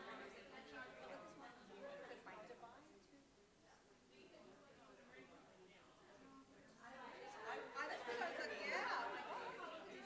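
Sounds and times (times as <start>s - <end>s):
many people talking: 0.0s - 10.0s.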